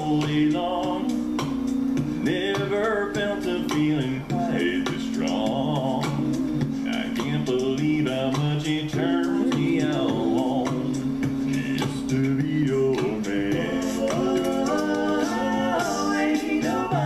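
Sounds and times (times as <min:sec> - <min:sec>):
male a cappella group singing: 0:00.0 - 0:01.5, 0:02.2 - 0:17.0.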